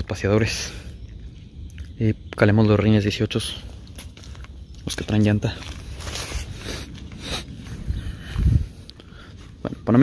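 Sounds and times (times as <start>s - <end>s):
wind rumble on microphone: 0.0s - 10.0s
footsteps on grass and gravel: 1.1s - 10.0s.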